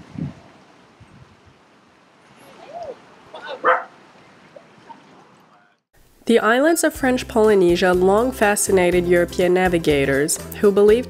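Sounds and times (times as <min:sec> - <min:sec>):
dog short bark: 0:03.4 - 0:03.9.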